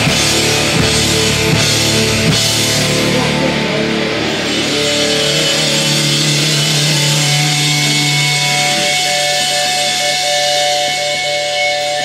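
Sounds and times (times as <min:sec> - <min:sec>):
electric guitar and bass low note: 0:00.0 - 0:12.0.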